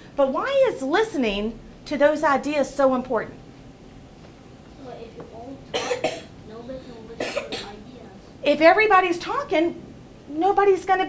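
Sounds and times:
person coughing: 0:05.7 - 0:06.3, 0:07.2 - 0:07.8.

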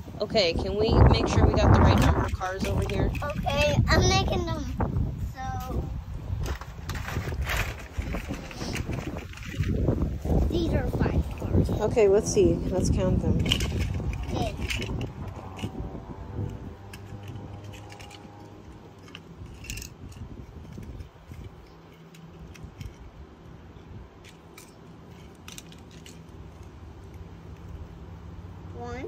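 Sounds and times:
toy cars clicking on asphalt: 0:01.0 - 0:04.5, 0:06.4 - 0:10.0, 0:13.2 - 0:23.2, 0:24.2 - 0:27.9.

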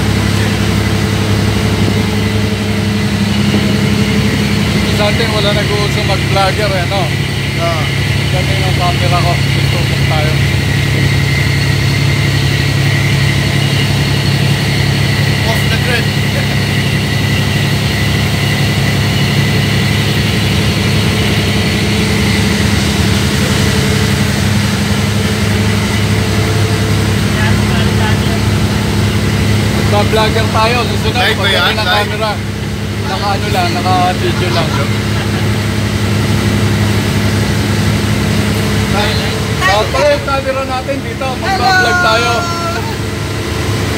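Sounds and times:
boat engine droning: 0:00.0 - 0:43.9
high engine whine: 0:00.0 - 0:43.9.

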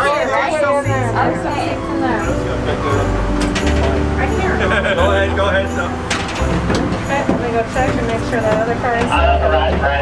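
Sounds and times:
voices: 0:00.0 - 0:10.0
step stool knocking: 0:06.1 - 0:10.0.

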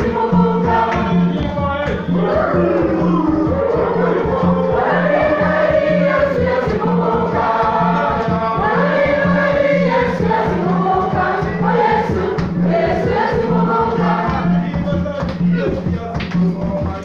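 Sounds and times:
choir singing gospel: 0:00.0 - 0:17.0
hand drums beating: 0:00.0 - 0:17.0.

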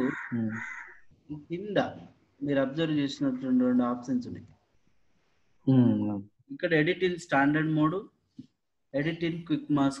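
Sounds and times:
person murmuring: 0:00.0 - 0:00.6, 0:05.7 - 0:06.2
harsh bird call: 0:00.0 - 0:01.0.

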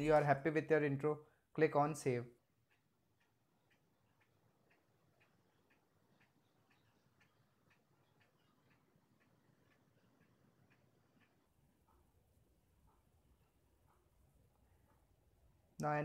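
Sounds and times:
faint even ticking: 0:01.2 - 0:16.0.

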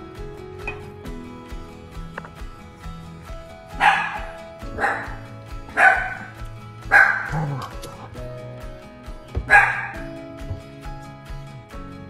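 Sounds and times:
background music with steady beat: 0:00.0 - 0:12.0
dog barking: 0:03.8 - 0:08.1, 0:09.4 - 0:10.1.

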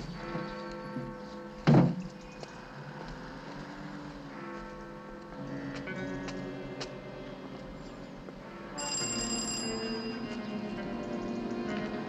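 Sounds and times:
background music: 0:03.2 - 0:12.0
doorbell ringing: 0:08.7 - 0:10.6.

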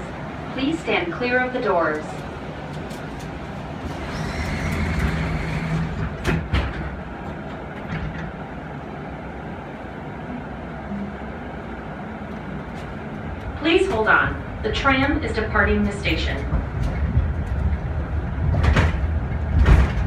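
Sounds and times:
tram car hum: 0:00.0 - 0:20.0
sliding doors clunking shut: 0:02.7 - 0:09.0, 0:12.3 - 0:20.0.

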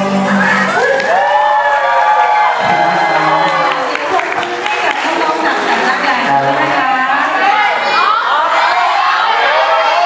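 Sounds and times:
audience cheering: 0:00.1 - 0:05.0, 0:07.4 - 0:10.0.

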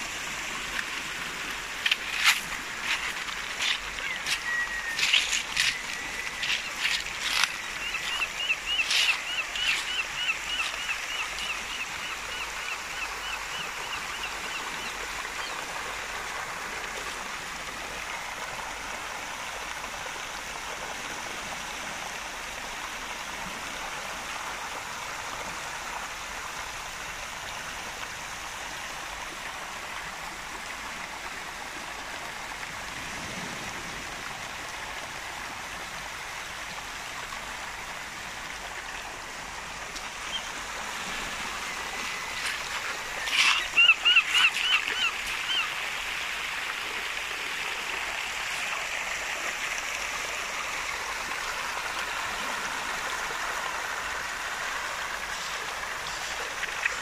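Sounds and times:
waves washing over pebbles: 0:00.0 - 0:11.8, 0:32.6 - 0:36.8, 0:37.8 - 0:57.0.

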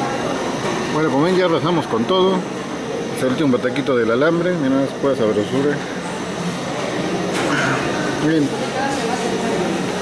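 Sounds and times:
restaurant background hum: 0:00.0 - 0:10.0.

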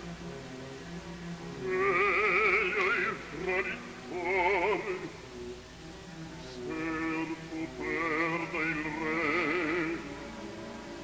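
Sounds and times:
orchestra: 0:00.0 - 0:11.0
operatic bass voice singing: 0:01.6 - 0:05.2, 0:06.4 - 0:10.2.

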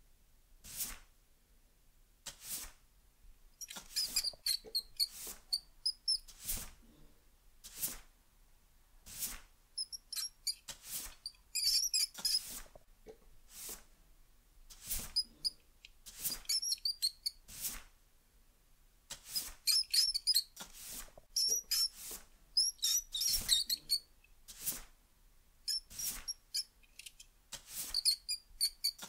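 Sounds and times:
broom sweeping a floor: 0:00.6 - 0:01.1, 0:02.2 - 0:02.8, 0:03.6 - 0:07.0, 0:07.6 - 0:08.1, 0:09.0 - 0:12.8, 0:13.5 - 0:14.0, 0:14.7 - 0:18.0, 0:19.1 - 0:25.0, 0:25.7 - 0:26.7, 0:27.5 - 0:29.0
mouse squeaking: 0:03.6 - 0:06.3, 0:09.8 - 0:12.6, 0:16.3 - 0:17.4, 0:19.6 - 0:20.6, 0:21.4 - 0:22.0, 0:22.6 - 0:24.1, 0:25.7 - 0:27.2, 0:27.8 - 0:29.0.

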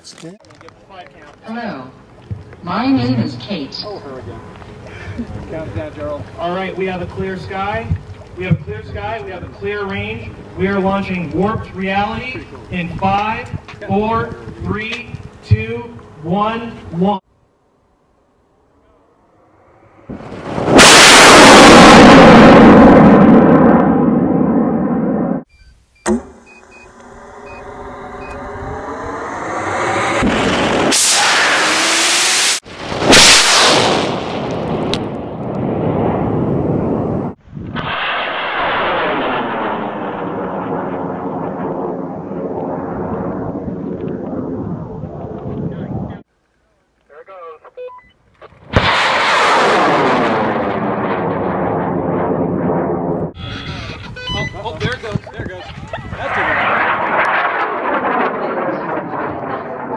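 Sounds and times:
rocket motor roaring: 0:19.4 - 0:25.5, 0:26.1 - 0:46.2.

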